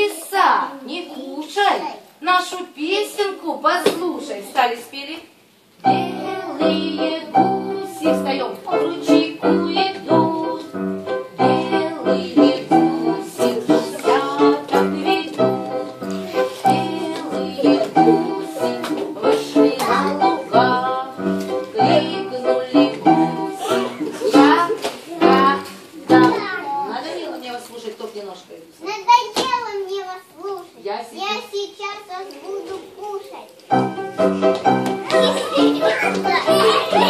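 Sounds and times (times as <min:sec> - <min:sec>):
children singing: 0:05.8 - 0:26.6, 0:34.2 - 0:37.0
rhythmic instrumental music: 0:05.9 - 0:26.5, 0:33.7 - 0:37.0.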